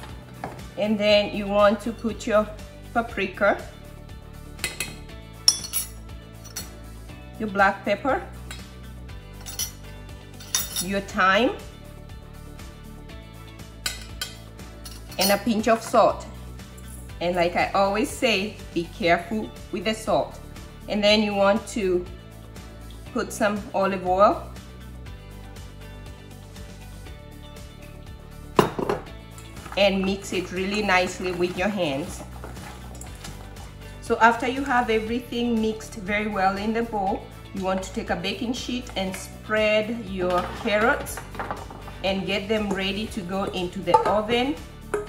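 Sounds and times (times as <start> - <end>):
background music: 0.0 - 45.0
metal spoon clinking on bowl: 4.6 - 5.9
glass bottle knocking on countertop: 28.6 - 29.1, 43.9 - 44.2.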